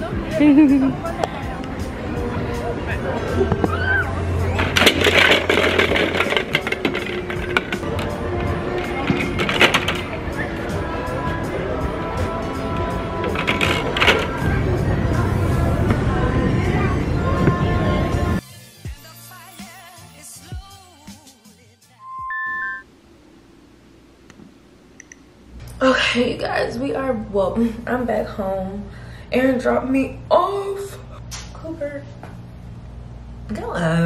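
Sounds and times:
music: 0.0 - 22.8
plastic discs clattering: 4.6 - 10.2.

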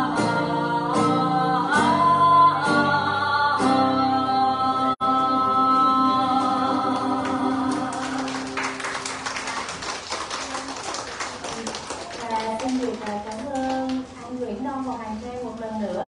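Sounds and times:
woman singing: 0.0 - 8.5
acoustic guitar: 0.0 - 10.0
crowd applauding: 7.0 - 14.0.

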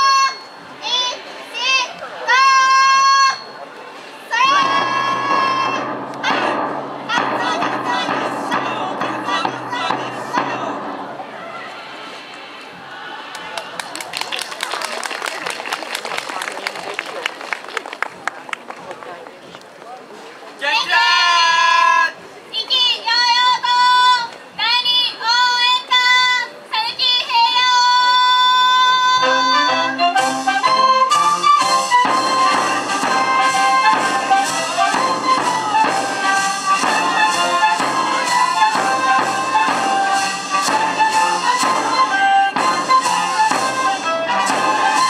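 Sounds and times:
trumpet fanfare: 4.4 - 11.1, 28.9 - 45.0.

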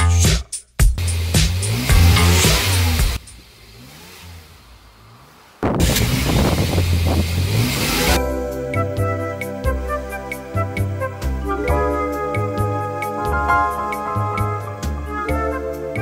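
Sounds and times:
hip-hop beat: 0.0 - 3.2, 8.2 - 16.0
car engines revving: 1.0 - 8.2
gentle music: 8.2 - 16.0.

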